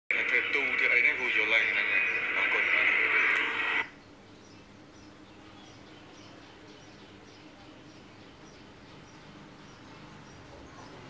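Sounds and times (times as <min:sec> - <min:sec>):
tinny radio-like voice: 0:00.1 - 0:03.9.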